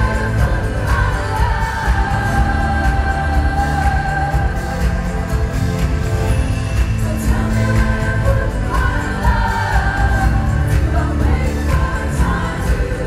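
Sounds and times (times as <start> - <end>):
woman singing: 0.0 - 5.6, 7.0 - 13.0.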